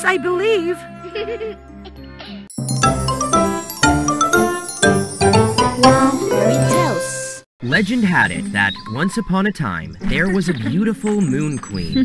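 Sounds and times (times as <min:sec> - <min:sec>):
tinkling chime jingle: 0:02.5 - 0:07.4.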